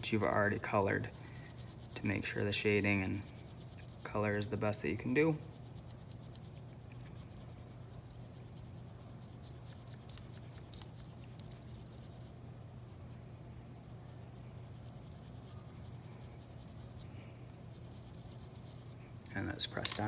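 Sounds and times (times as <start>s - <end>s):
pastel stick scratching on paper: 0.0s - 13.0s, 13.7s - 19.1s
steady low hum: 0.0s - 20.0s.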